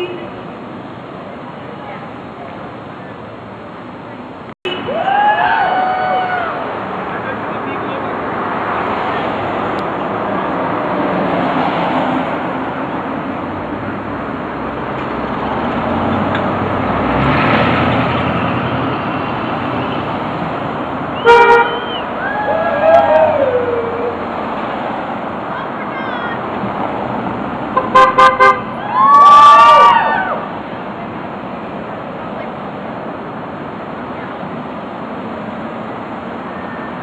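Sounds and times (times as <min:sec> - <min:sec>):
city traffic passing: 0:00.0 - 0:37.0
truck passing: 0:04.7 - 0:37.0
voices calling out: 0:21.1 - 0:24.6, 0:25.3 - 0:26.8
short car horn toot: 0:21.2 - 0:21.9.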